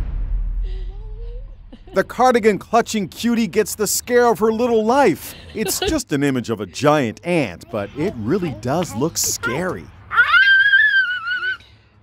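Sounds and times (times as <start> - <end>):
toddler girl screaming: 10.1 - 11.6.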